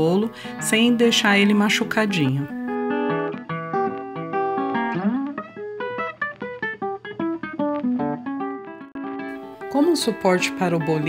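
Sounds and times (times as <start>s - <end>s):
guitar plucking single notes: 0.0s - 11.0s.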